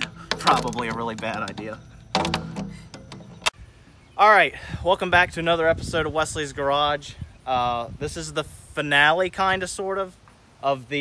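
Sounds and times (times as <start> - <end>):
quiet hiss: 3.5 - 11.0.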